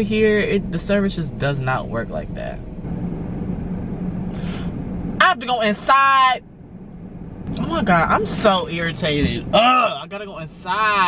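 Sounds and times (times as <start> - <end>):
car engine and cabin rumble: 0.0 - 11.0.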